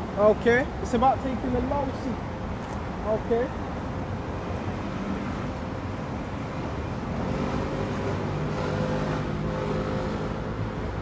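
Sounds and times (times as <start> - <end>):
traffic noise: 0.0 - 11.0.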